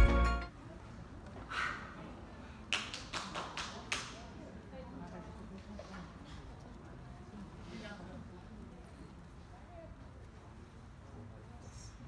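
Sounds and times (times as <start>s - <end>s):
faint indistinct chatter: 0.0s - 12.0s.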